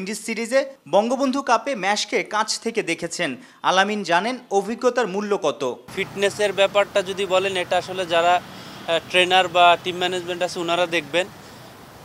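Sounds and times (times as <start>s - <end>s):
man speaking: 0.0s - 11.4s.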